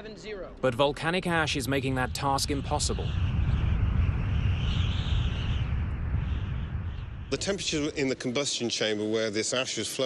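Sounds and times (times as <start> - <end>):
deep rumble: 0.5 - 8.3.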